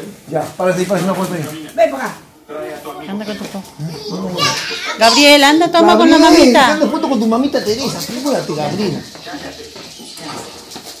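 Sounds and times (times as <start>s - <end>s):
faint voices talking: 1.2s - 11.0s.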